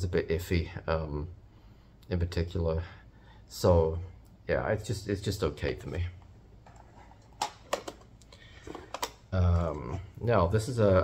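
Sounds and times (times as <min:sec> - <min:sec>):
plastic cassette cases clicking: 0:06.7 - 0:09.2.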